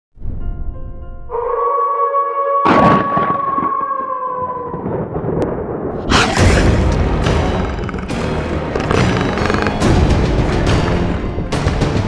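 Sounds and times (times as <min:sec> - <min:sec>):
wolf howl: 0:01.3 - 0:04.9.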